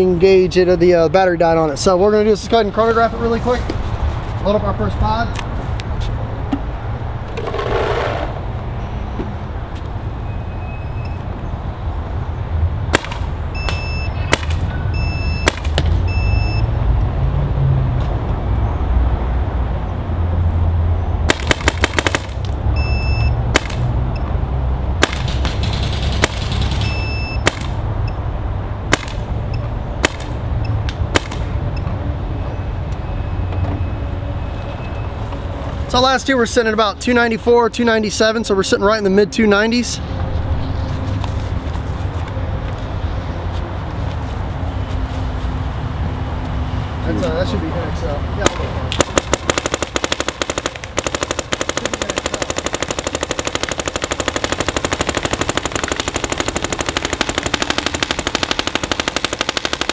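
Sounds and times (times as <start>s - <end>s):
paintball marker shots: 12.9s - 14.7s, 15.4s - 16.0s, 21.3s - 22.6s, 23.5s - 23.9s, 25.0s - 27.8s, 28.9s - 29.3s, 30.0s - 30.4s, 31.1s - 31.5s, 48.4s - 59.9s
short high beep: 22.8s - 23.4s.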